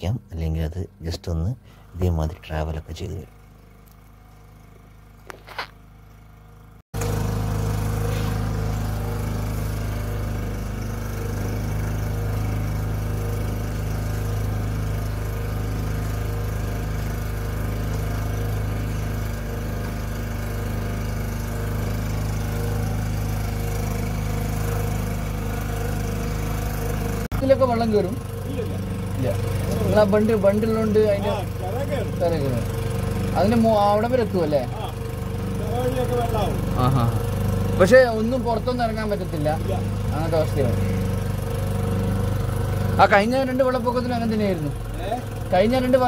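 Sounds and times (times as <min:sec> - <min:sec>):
outboard motor running: 0:00.0 - 0:46.0.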